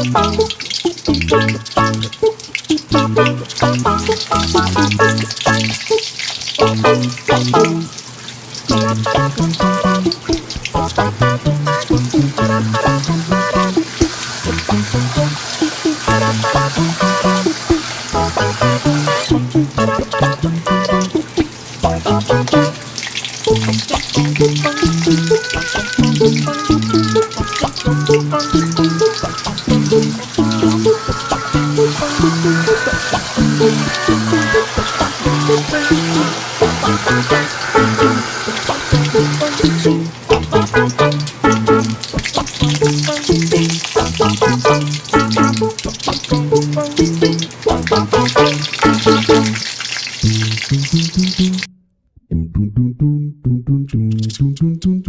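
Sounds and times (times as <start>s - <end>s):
background music with bass and beat: 0.0s - 2.2s, 8.7s - 15.4s, 16.0s - 22.8s, 23.5s - 49.6s
food sizzling in oil: 0.0s - 51.7s.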